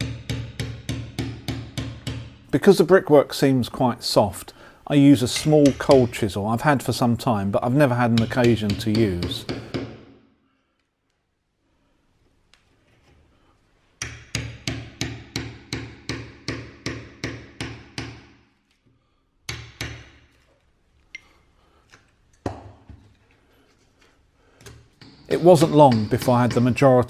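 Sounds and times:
hammer striking a chisel: 0.0 - 2.5, 5.4 - 6.2, 8.0 - 10.2, 14.0 - 18.4, 19.5 - 20.3, 24.7 - 27.0.

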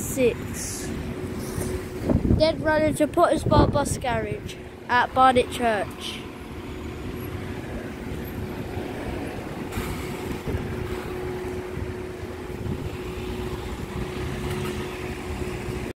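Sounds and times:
electric bus humming: 0.0 - 15.9
road and tyre rumble: 0.0 - 15.9.

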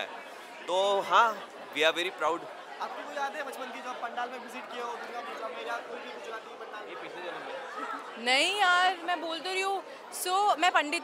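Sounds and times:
background chatter: 0.0 - 11.0
interview voices: 0.0 - 11.0.

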